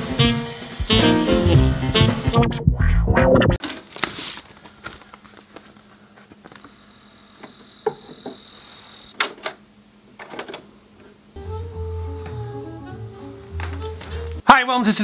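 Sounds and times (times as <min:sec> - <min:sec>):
music: 0:00.0 - 0:03.6, 0:11.4 - 0:14.5
paper rustling: 0:03.6 - 0:06.7
faint steady hum: 0:04.4 - 0:14.4.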